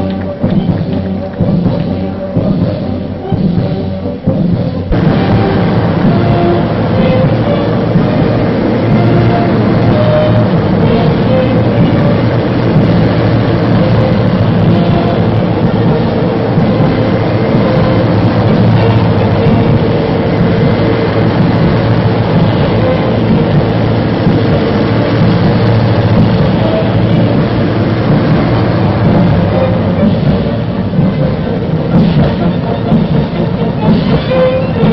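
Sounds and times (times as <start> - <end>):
faint band music: 0.0 - 34.9
military vehicles rumbling past: 0.0 - 34.9.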